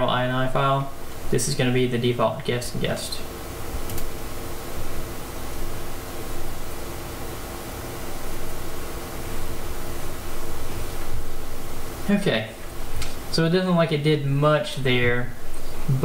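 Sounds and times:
background hiss: 0.0 - 16.0.

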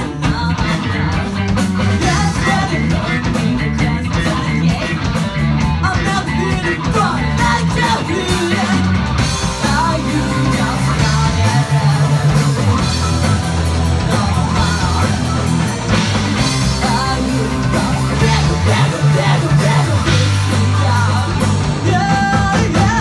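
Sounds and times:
lead vocal singing: 0.0 - 23.0
live rock band playing: 0.0 - 23.0.

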